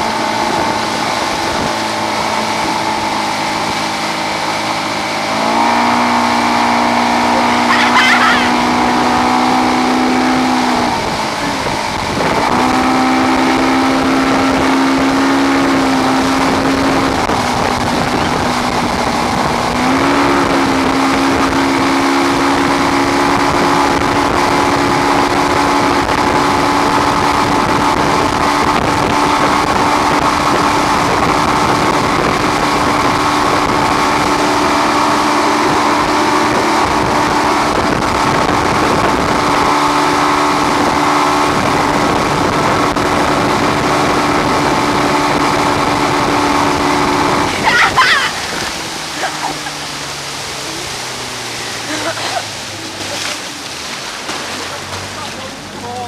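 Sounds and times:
wind on microphone: 0.0 - 55.8
motorboat engine running: 0.0 - 56.0
rushing boat wake: 0.0 - 56.0.

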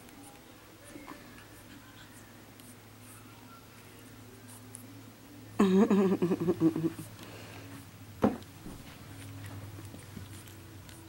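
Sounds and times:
low steady hum: 0.0 - 11.0
puppies scratching on carpet: 8.6 - 11.0.

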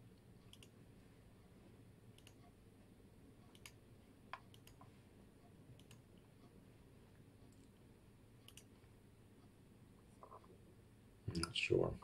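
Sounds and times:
computer mouse clicks: 0.4 - 0.8, 2.2 - 2.5, 3.5 - 4.9, 5.8 - 6.2, 8.4 - 8.8.

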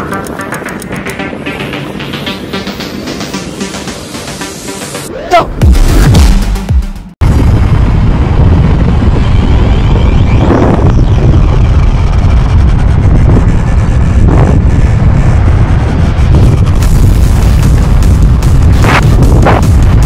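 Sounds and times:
wind buffeting microphone: 7.2 - 20.0.

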